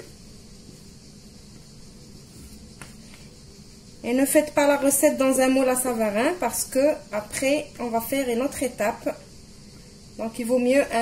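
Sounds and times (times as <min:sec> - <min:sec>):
room hum and hiss: 0:00.0 - 0:11.0.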